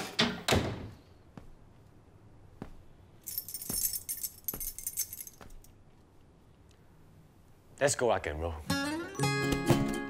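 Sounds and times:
slow footsteps: 0:01.0 - 0:06.9
metallic jingling of keys: 0:03.2 - 0:05.8.

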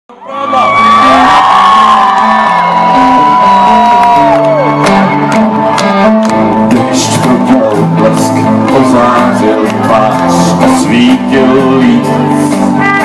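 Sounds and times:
crowd cheering and whooping: 0:00.1 - 0:06.5
bass line: 0:00.6 - 0:13.0
live rock band playing: 0:00.7 - 0:13.0.

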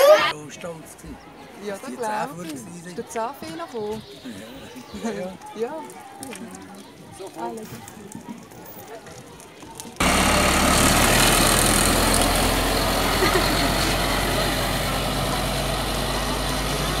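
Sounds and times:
bus engine running: 0:10.0 - 0:17.0.

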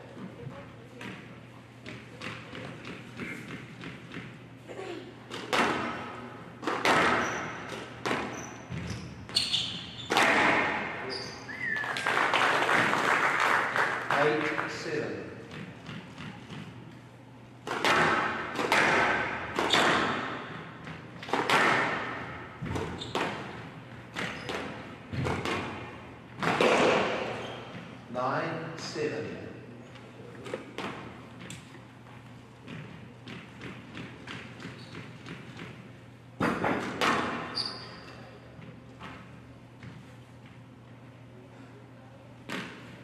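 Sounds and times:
squash ball knocks echoing: 0:05.3 - 0:09.2, 0:10.0 - 0:11.1, 0:17.6 - 0:28.0, 0:32.6 - 0:37.6.

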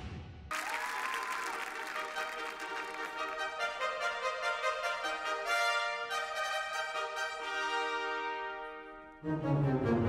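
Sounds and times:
audience applause: 0:00.5 - 0:04.1.

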